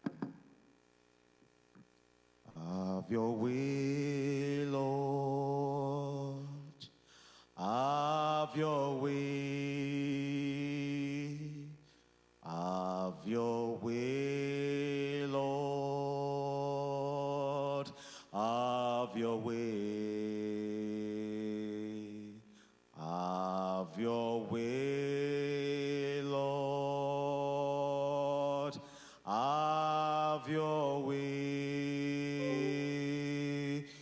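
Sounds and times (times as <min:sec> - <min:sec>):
man singing long held notes: 0:02.5 - 0:06.9, 0:23.0 - 0:34.0.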